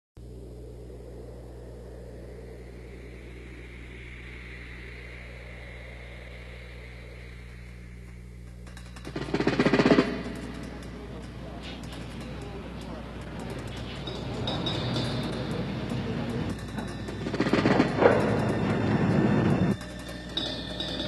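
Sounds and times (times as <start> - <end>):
jet engine rushing and whining: 0.2 - 21.0
low electrical hum: 0.2 - 21.0
loud rattling burst: 7.8 - 21.0.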